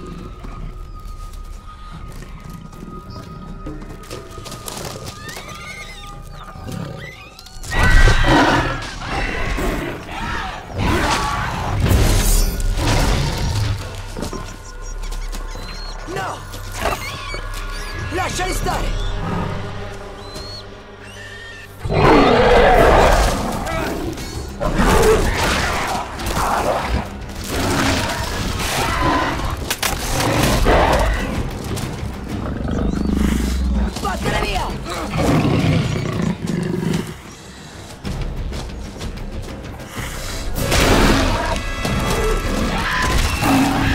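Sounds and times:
dramatic film score: 0.0s - 43.9s.

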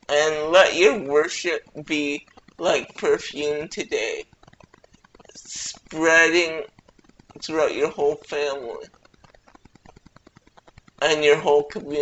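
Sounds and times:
faint rapid clicking: 0.0s - 12.0s.

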